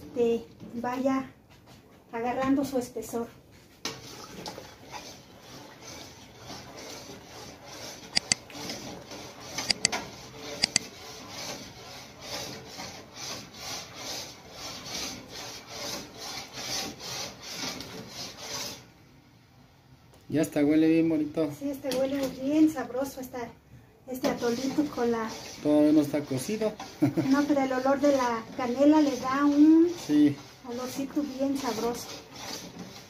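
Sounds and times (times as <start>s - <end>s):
metal spoon scraping a pot: 3.9s - 18.8s, 24.2s - 33.0s.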